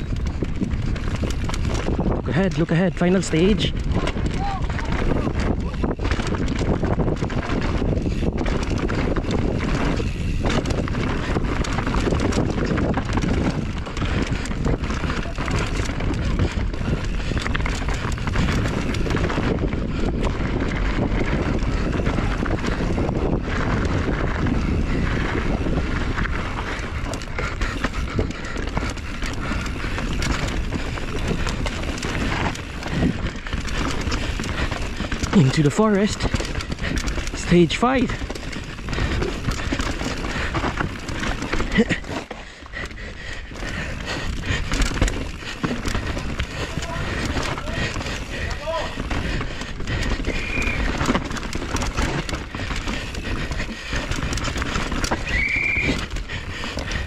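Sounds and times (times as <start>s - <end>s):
tyres rolling over dirt: 0.0s - 42.8s, 43.4s - 57.0s
bike rattling over bumps: 0.0s - 57.0s
wind buffeting microphone: 0.0s - 57.0s.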